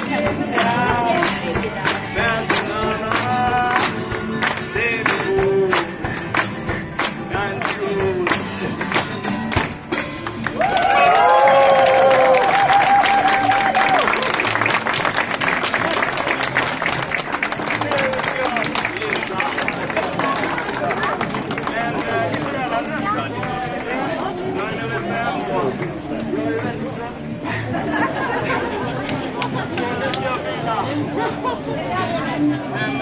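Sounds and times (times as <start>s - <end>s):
person singing: 0.0s - 9.0s
drum beat: 0.0s - 10.6s
guitar: 0.0s - 33.0s
audience applauding: 10.1s - 23.2s.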